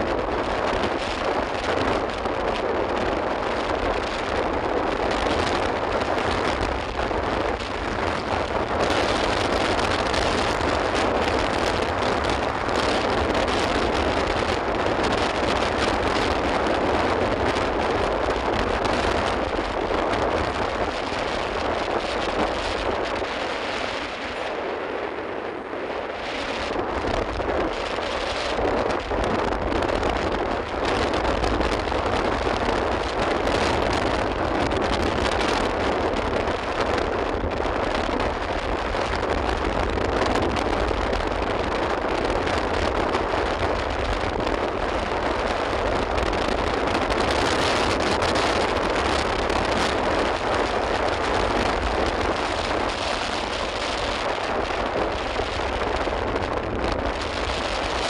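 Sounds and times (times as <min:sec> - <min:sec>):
wind on microphone: 0:00.0 - 0:58.0.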